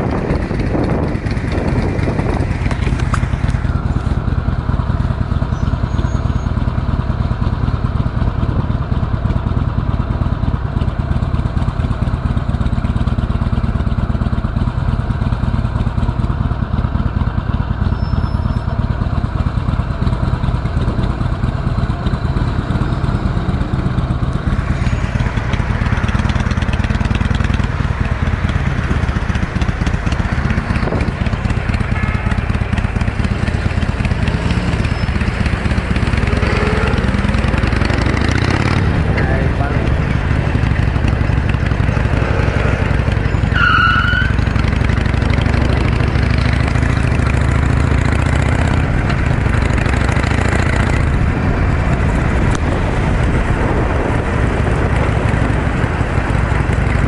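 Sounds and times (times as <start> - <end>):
motorcycle engine running: 0.0 - 57.0
rushing wind and road noise: 0.0 - 57.0.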